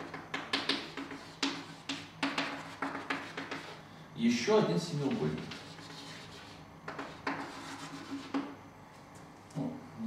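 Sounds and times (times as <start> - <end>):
chalk tapping on blackboard: 0.0 - 3.8, 5.1 - 8.6.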